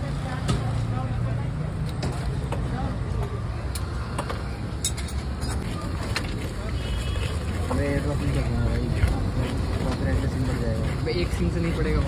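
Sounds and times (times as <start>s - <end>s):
street noise hum: 0.0s - 12.0s.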